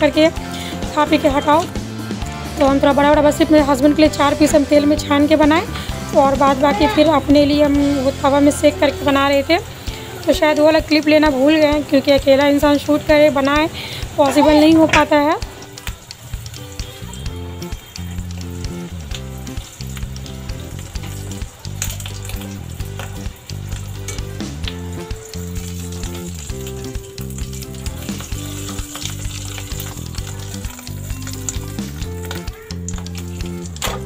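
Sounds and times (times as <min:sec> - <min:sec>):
background music: 0:00.0 - 0:34.0
food deep-frying in hot oil: 0:00.0 - 0:34.0.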